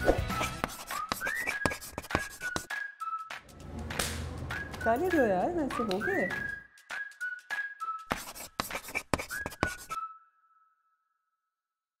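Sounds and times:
chalk scratching on a chalkboard: 0.0 - 2.7, 8.1 - 10.0.

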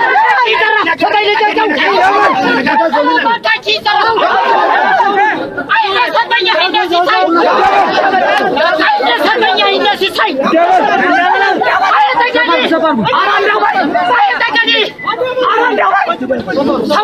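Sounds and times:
men calling out and talking: 0.0 - 17.0.

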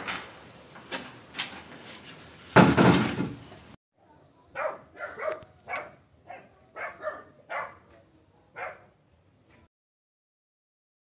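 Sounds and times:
dog barking: 4.5 - 7.9, 8.5 - 9.0.

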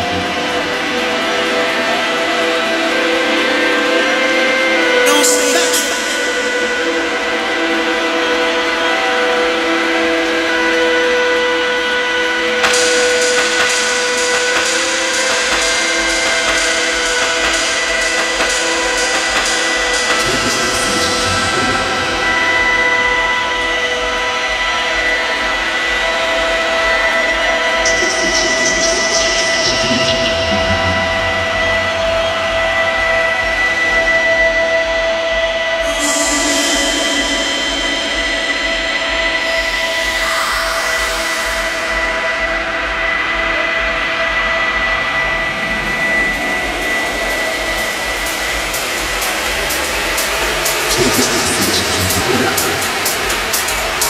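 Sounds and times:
house music over club sound system: 0.0 - 54.0
rising synth sweep: 12.7 - 54.0.

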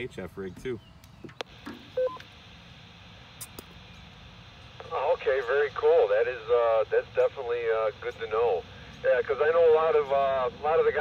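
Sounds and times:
radio carrier hiss: 1.4 - 11.0
person talking over radio: 4.8 - 11.0.

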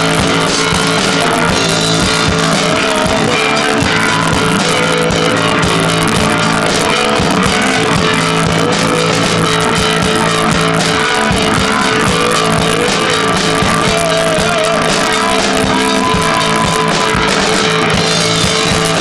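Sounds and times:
rock band playing live: 0.0 - 19.0.

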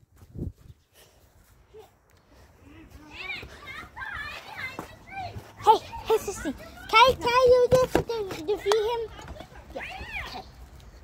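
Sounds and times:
children calling out and talking: 1.6 - 11.0.

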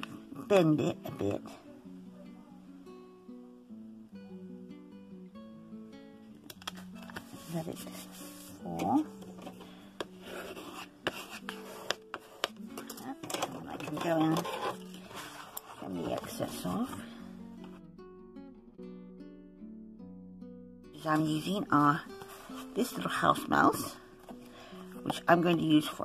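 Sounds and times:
acoustic guitar music: 0.0 - 26.0
paper and card crackling: 6.5 - 16.6, 22.1 - 22.9.

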